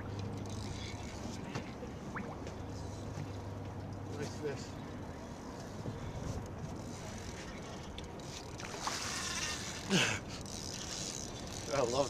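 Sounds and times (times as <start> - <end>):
fishing reel drag buzzing: 8.2 - 12.0.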